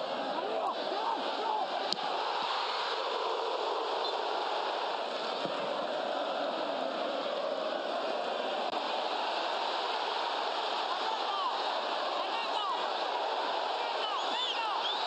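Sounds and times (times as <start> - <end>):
rushing stadium ambience: 0.0 - 15.0.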